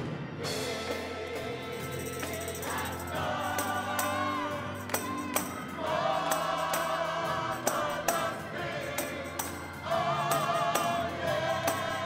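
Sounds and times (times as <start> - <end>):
organ playing: 0.0 - 12.0
sharp percussion hits: 0.0 - 12.0
voices holding long notes: 0.4 - 12.0.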